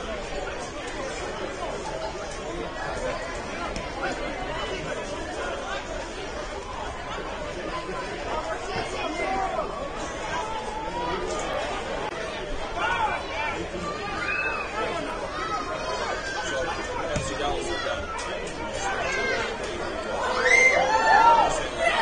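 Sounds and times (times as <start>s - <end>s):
chatter of voices: 0.0s - 22.0s
stadium background noise: 0.0s - 22.0s.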